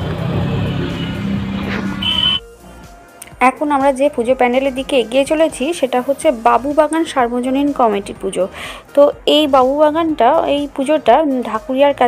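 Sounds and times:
car engine rumble: 0.0 - 2.8
road noise: 0.0 - 3.2.

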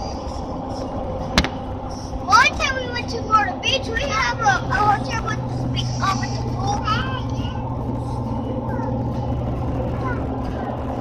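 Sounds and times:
road and engine drone in car: 0.0 - 11.0.

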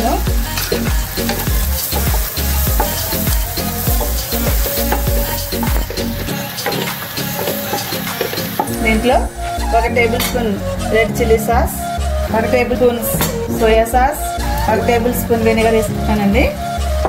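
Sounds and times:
frying sizzle: 0.0 - 10.6.

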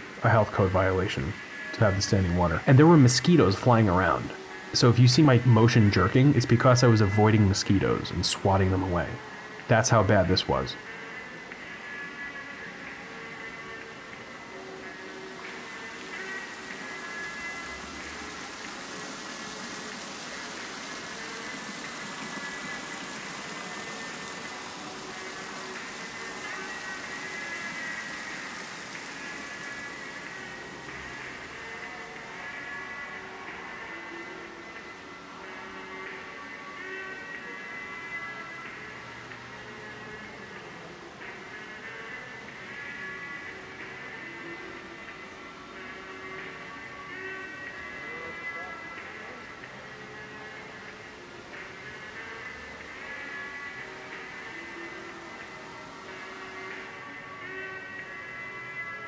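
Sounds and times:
fountain water running: 0.0 - 9.0, 14.9 - 33.2
slow ambient music: 0.0 - 59.0.

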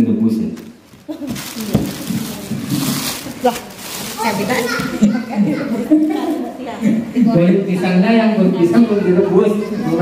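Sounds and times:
plastic bag crinkling: 0.6 - 5.0.

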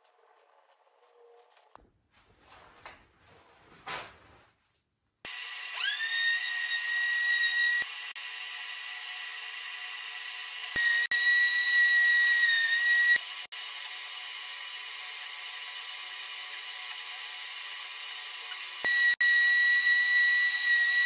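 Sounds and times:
orbital sander whine: 5.3 - 21.0.

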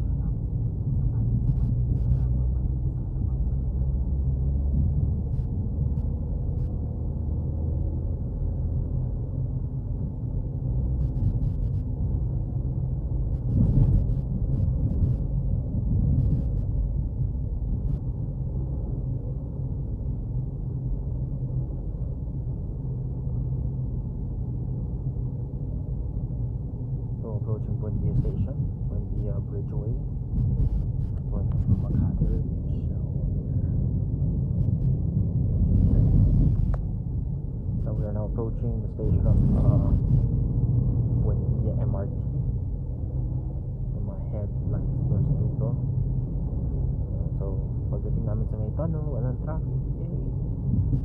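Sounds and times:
car engine and tyres rumbling: 0.0 - 51.0.

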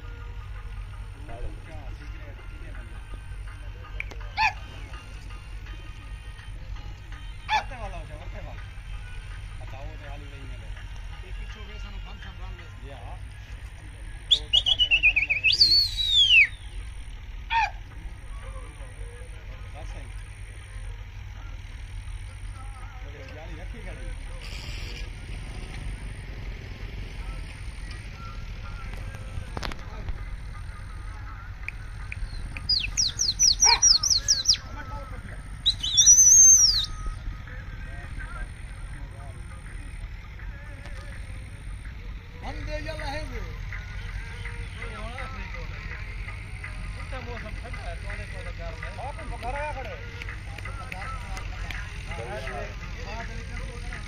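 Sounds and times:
birds whistling: 14.2 - 17.7, 32.0 - 34.7, 35.4 - 37.4
bird trilling high notes: 14.3 - 16.9, 32.2 - 34.7, 35.6 - 37.3.

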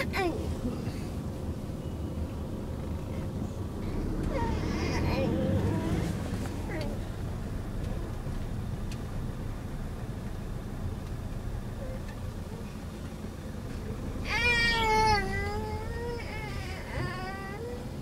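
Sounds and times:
car cabin rumble: 0.0 - 18.0.

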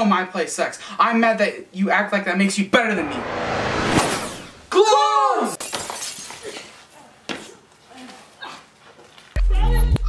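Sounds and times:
glass shattering crash: 3.8 - 4.7, 5.5 - 6.6
tinkles and clatters of debris: 5.6 - 6.7.

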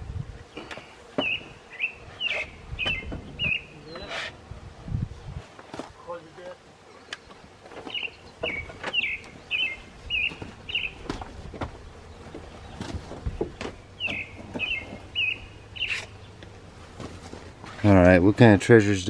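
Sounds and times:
bird chirping: 0.5 - 4.3, 6.9 - 16.5.

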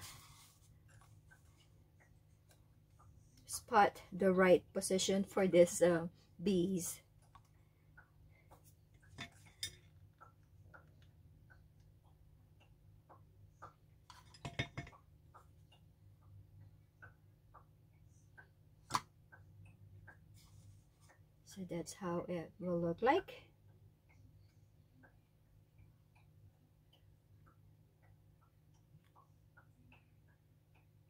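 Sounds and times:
low room hum: 0.0 - 31.0.

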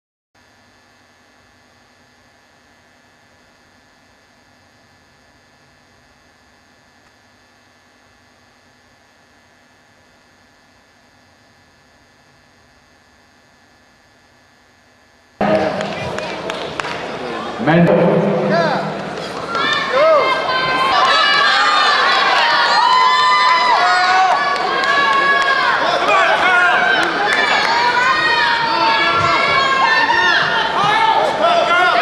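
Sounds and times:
electrical hum and hiss: 0.4 - 32.0
crowd talking in a hall: 15.4 - 32.0.

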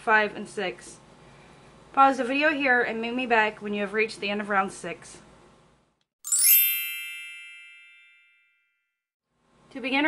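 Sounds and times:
sparkle chime shimmer: 6.2 - 8.7.

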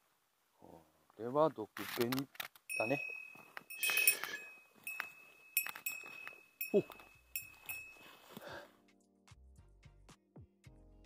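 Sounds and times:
small bell jingling: 2.7 - 8.3.

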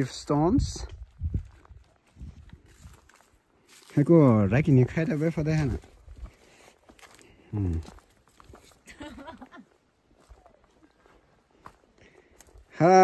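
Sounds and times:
footsteps on dirt path: 0.0 - 13.0
short vocal sound: 7.5 - 7.9.

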